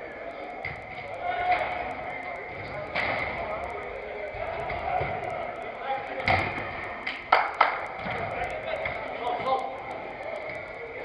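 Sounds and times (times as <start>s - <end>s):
players shouting and talking: 0.0s - 11.0s.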